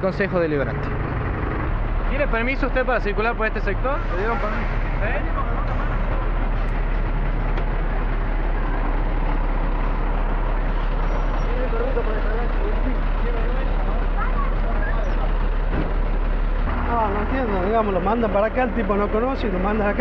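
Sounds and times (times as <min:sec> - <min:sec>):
truck diesel engine idling: 0:00.0 - 0:20.0.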